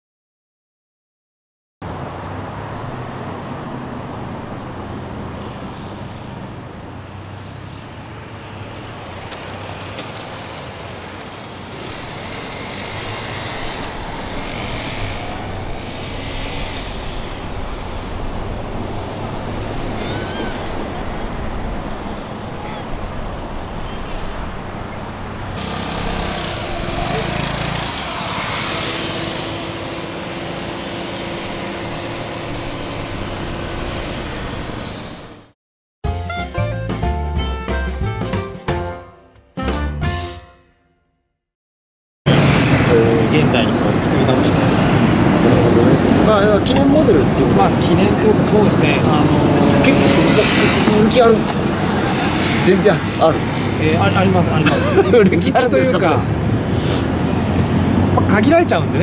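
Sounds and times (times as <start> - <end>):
outdoor noise: 1.8 - 35.6, 42.3 - 59.0
scooter engine running: 6.9 - 21.2, 25.6 - 34.7, 42.3 - 52.6
indistinct voices: 19.6 - 24.4, 42.7 - 57.1.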